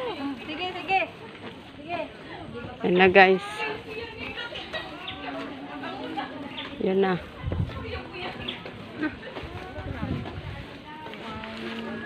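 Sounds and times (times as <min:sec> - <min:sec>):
faint chatter of people: 0:00.0 - 0:12.0
wind and handling rumble: 0:00.0 - 0:12.0.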